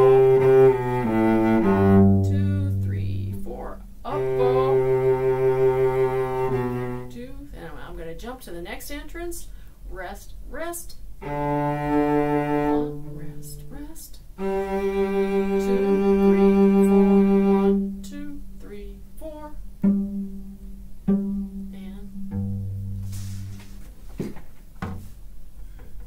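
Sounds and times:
bowed cello: 0:00.0 - 0:07.7, 0:11.2 - 0:24.0
single knock: 0:24.2 - 0:25.1.

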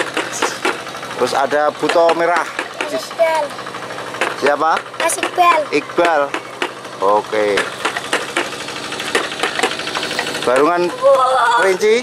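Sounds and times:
sharp clicks and knocks: 0:00.0 - 0:10.8
small engine running: 0:00.0 - 0:12.0.

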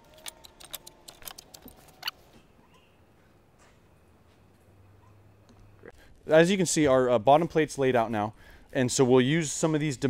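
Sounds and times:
brief squeak: 0:01.8 - 0:03.0.

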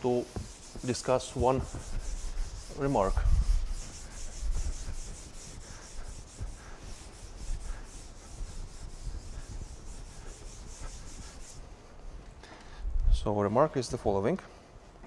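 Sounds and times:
cloth wiping chalk off blackboard: 0:00.0 - 0:12.2.

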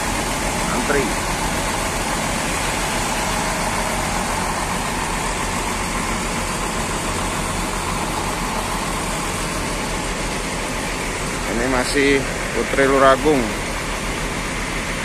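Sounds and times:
bus diesel engines idling: 0:00.0 - 0:15.0.

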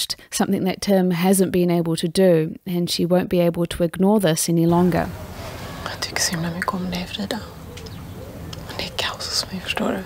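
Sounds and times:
woman whispering: 0:05.7 - 0:07.6, 0:08.6 - 0:10.0.

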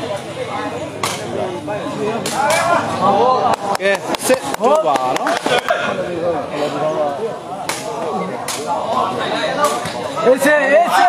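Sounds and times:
crowd chatter: 0:00.0 - 0:11.0
ball being struck: 0:01.0 - 0:01.3.

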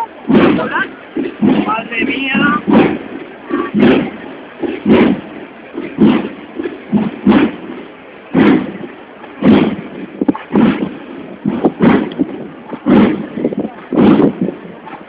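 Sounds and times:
processional drum beating: 0:00.0 - 0:15.0.

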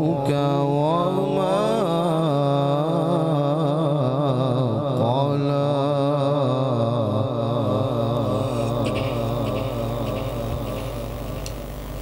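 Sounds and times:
man reciting melodically: 0:00.0 - 0:11.7.

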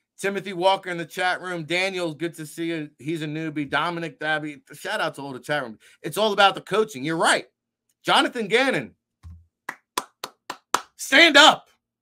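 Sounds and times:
person clapping hands: 0:09.2 - 0:11.0.

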